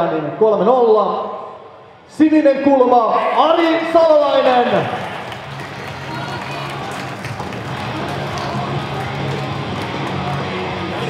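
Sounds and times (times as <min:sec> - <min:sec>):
crowd applauding and cheering: 0:03.4 - 0:11.0
music playing: 0:04.5 - 0:11.0.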